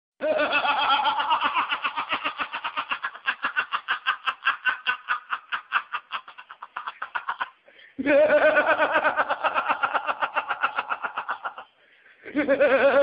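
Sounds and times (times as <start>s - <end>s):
man laughing hard: 0.2s - 13.0s.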